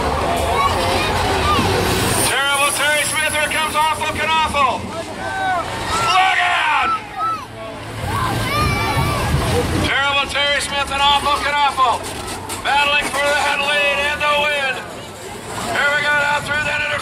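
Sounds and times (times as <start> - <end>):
bus engines rumbling: 0.0 - 17.0.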